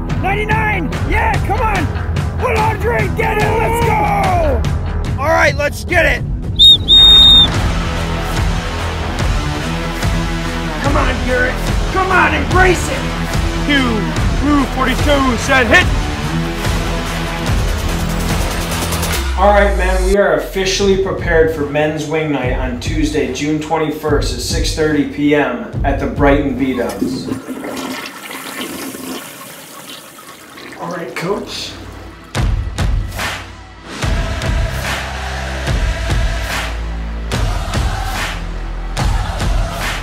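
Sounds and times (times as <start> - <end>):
whistle blast: 6.6 - 7.6
toilet flushing: 26.6 - 33.2
background music with beat: 32.3 - 40.0.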